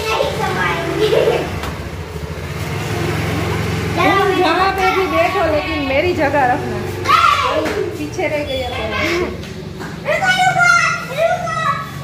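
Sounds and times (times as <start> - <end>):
scooter engine idling: 0.0 - 12.0.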